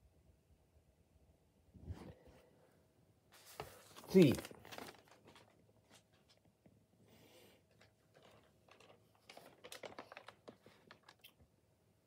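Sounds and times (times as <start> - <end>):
paper rustling and clicks: 3.4 - 6.5, 7.7 - 11.4.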